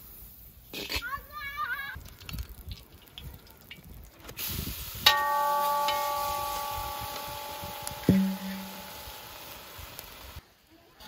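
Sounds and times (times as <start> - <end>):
bell-like metal ringing: 5.1 - 9.0
metal pot knocking on kazan rim: 8.0 - 8.8.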